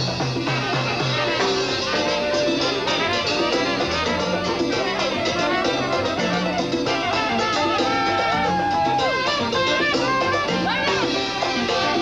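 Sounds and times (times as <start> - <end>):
latin dance band playing: 0.0 - 12.0.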